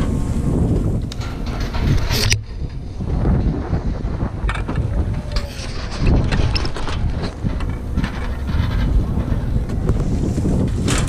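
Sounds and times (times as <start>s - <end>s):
wind buffeting microphone: 0.0s - 11.0s
sharp clatter: 0.9s - 11.0s.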